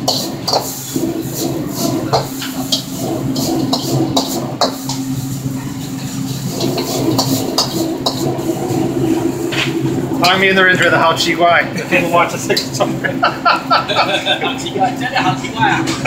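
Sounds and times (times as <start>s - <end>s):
metal ladle scraping a wok: 0.0s - 10.5s
wok burner roaring: 0.0s - 16.0s.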